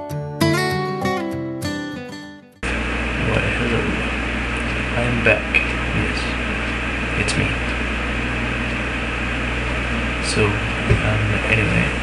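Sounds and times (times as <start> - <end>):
strummed acoustic guitar: 0.0 - 2.6
microphone hum and hiss: 2.6 - 12.0.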